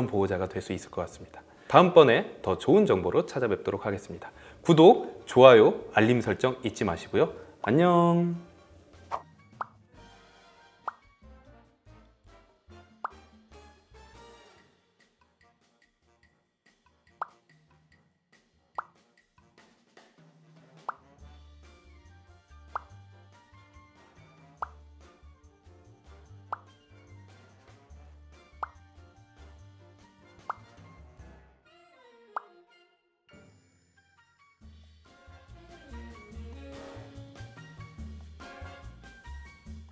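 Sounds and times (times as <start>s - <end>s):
soft background music: 0.0s - 39.9s
background music with bass line: 34.6s - 39.9s.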